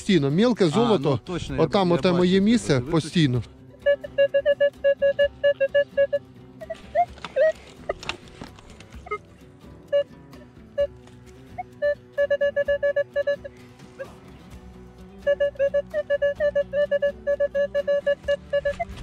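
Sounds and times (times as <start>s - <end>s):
metal detector beeps: 3.8s - 8.0s, 10.7s - 11.0s, 11.6s - 13.5s, 15.2s - 19.0s.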